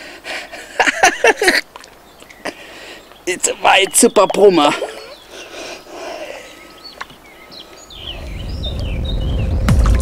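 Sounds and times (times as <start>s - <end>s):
birds chirping: 0.0s - 9.9s.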